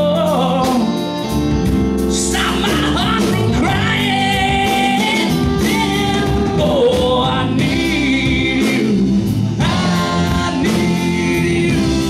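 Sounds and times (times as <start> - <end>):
guitars: 0.0 - 12.0
keyboard: 0.0 - 12.0.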